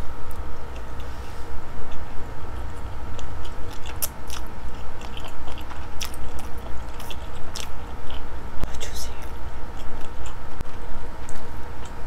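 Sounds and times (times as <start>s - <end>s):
chewing noodles: 1.9s - 8.3s, 9.2s - 12.0s.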